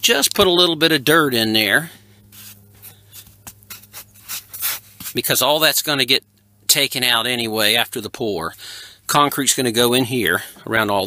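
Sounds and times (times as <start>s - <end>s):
hand scratching dirt on foam: 2.3s - 5.3s.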